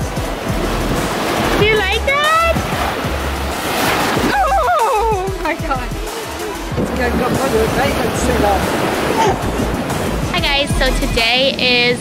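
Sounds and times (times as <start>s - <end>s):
ocean surf washing in: 0.0s - 12.0s
wind on microphone: 0.0s - 12.0s.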